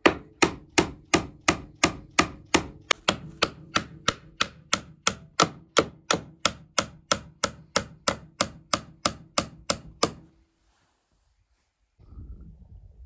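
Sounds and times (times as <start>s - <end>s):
hammer striking nails into wood: 0.0s - 10.3s.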